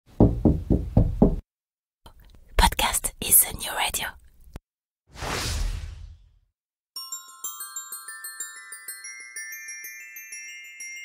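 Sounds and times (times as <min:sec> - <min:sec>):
quick knocks: 0:00.2 - 0:01.4
whispery voice: 0:02.1 - 0:04.2.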